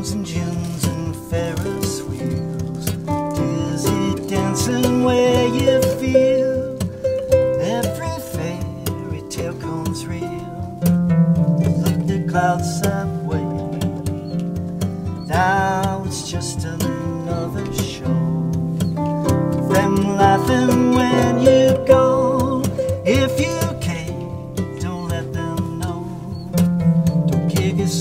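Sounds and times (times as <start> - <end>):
acoustic guitar rhythm: 0.0 - 28.0
plucked harp notes: 0.0 - 28.0.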